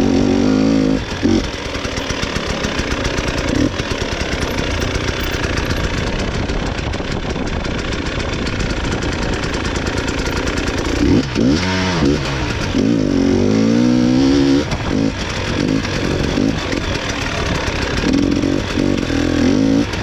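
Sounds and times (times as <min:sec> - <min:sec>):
motorcycle throttle blips: 0:00.2 - 0:20.0
motorcycle engine popping: 0:01.0 - 0:13.1, 0:14.1 - 0:20.0.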